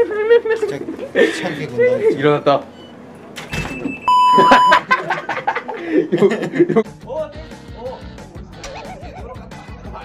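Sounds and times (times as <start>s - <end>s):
electronic beep: 3.8s - 4.8s
person laughing: 4.4s - 6.9s, 8.6s - 9.4s.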